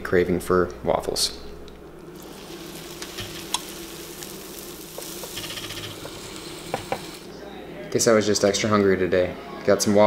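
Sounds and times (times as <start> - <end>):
batter sizzling in waffle iron: 2.1 - 7.3.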